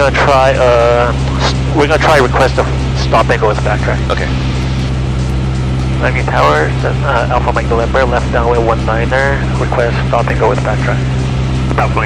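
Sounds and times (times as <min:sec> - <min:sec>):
aircraft engine droning: 0:00.0 - 0:12.0.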